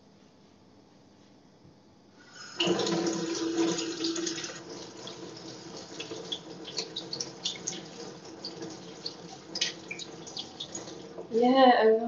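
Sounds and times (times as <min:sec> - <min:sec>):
tap water running into sink: 0:02.3 - 0:11.4.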